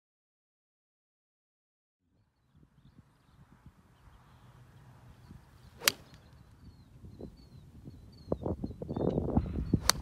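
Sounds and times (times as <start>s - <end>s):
faint bird chirps: 2.1s - 9.9s
golf club striking ball: 5.8s - 6.3s.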